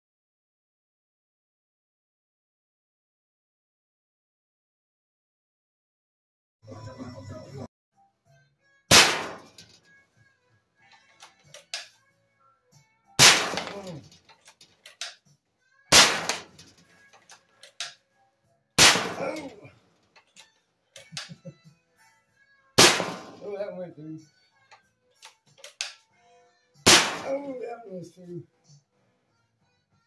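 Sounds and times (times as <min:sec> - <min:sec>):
air rifle shots cracking: 0:08.9 - 0:09.8, 0:13.2 - 0:14.2, 0:15.9 - 0:16.8, 0:18.8 - 0:19.6, 0:22.8 - 0:23.4, 0:26.9 - 0:27.5
rifle action clicks: 0:11.2 - 0:11.9, 0:13.5 - 0:15.2, 0:16.0 - 0:18.0, 0:25.2 - 0:26.0.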